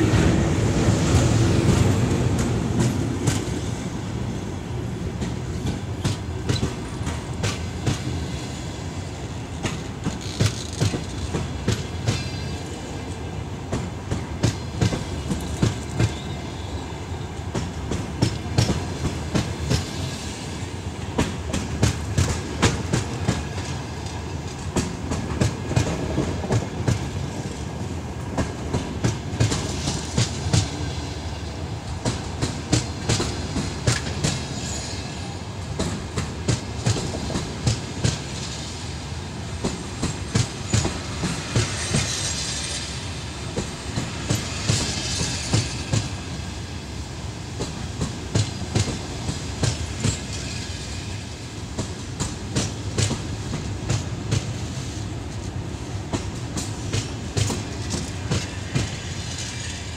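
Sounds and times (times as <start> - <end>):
train wheels rumbling on rails: 0.0 - 59.9
clickety-clack of wheels: 0.9 - 3.6, 5.1 - 8.4, 9.5 - 16.4, 17.5 - 20.0, 21.1 - 31.0, 31.9 - 38.8, 39.6 - 46.4, 47.6 - 59.9.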